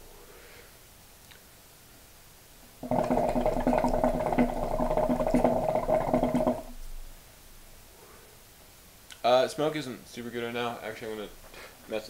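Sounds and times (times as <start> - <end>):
hookah water bubbling: 2.8 - 6.8.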